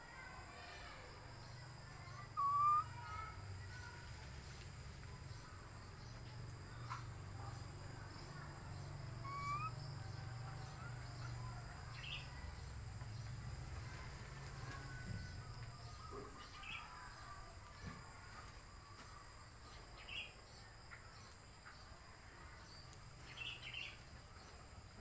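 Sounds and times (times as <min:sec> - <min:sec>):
insect chorus drone: 0:00.0 - 0:25.0
bird chirps: 0:02.1 - 0:03.3, 0:08.7 - 0:12.4.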